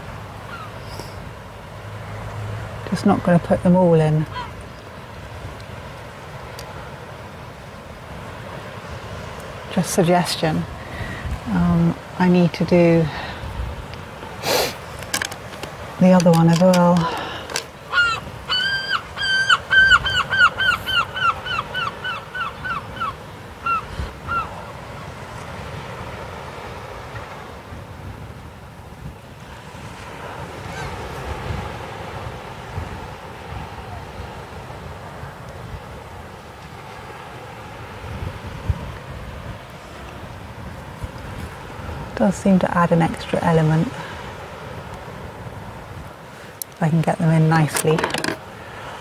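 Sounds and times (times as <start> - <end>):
wind: 0.0 - 49.0
gull calling: 0.5 - 0.9, 4.2 - 4.6, 17.0 - 24.7.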